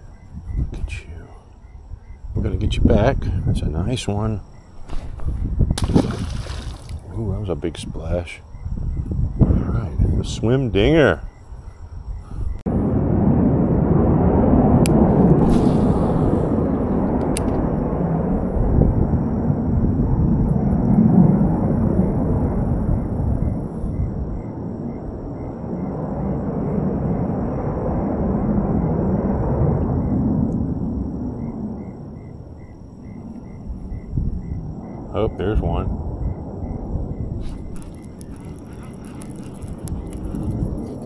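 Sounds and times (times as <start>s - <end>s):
faint insect chirp: 0.0s - 12.7s, 15.5s - 41.0s
wind buffeting microphone: 0.0s - 41.0s.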